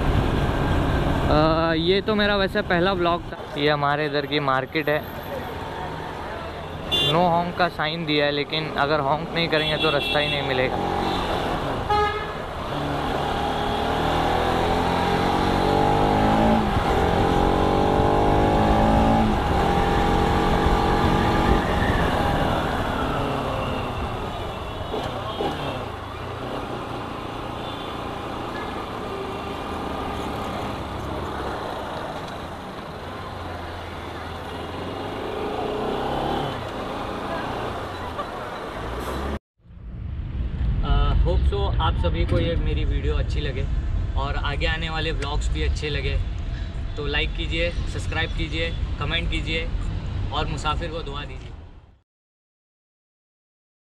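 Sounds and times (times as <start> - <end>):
car horns tooting: 6.7 - 7.3, 9.5 - 12.4, 23.3 - 26.0
motorcycle engine accelerating: 12.8 - 27.4.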